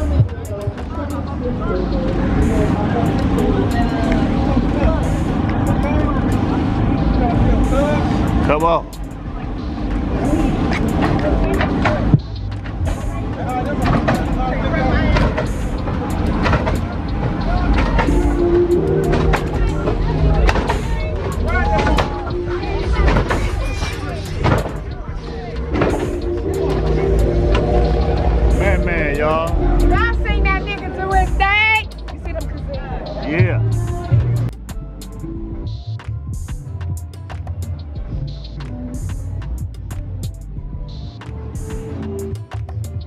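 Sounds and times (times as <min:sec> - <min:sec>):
low car engine rumble: 0:00.0 - 0:43.0
music: 0:00.0 - 0:43.0
unclear background voices: 0:00.0 - 0:43.0.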